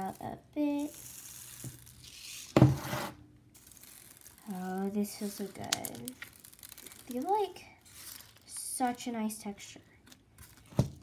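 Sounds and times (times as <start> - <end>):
sugar beads pattering onto slime: 0.0 - 2.6, 3.5 - 9.3.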